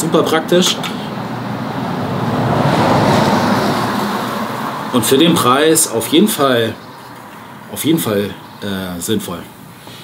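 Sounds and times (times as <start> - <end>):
car passing: 0.0 - 10.0.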